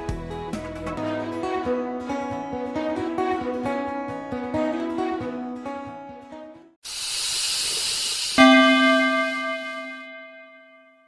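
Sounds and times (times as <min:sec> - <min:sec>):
whoosh of hiss: 0:06.8 - 0:09.2
loud struck ringing tone: 0:08.4 - 0:11.0.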